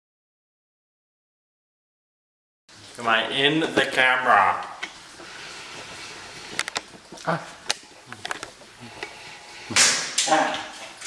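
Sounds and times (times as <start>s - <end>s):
sharp small clicks and knocks: 6.5s - 7.0s, 7.6s - 9.1s
person exclaiming: 7.2s - 7.6s.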